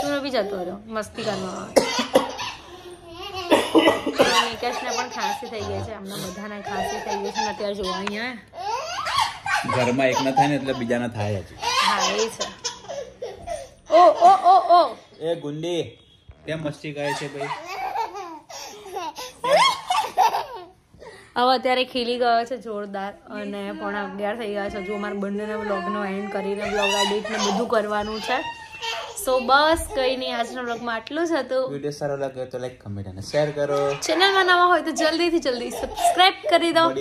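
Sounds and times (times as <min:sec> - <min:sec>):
person coughing: 0:01.2 - 0:02.6, 0:03.5 - 0:04.6
toddler laughing: 0:01.3 - 0:15.0, 0:17.0 - 0:20.8, 0:26.6 - 0:30.9, 0:33.8 - 0:37.0
person talking: 0:35.6 - 0:37.0.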